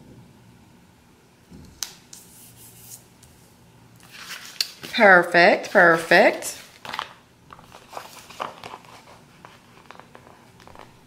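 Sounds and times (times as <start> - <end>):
paper rubbing and rustling: 4.0 - 11.0.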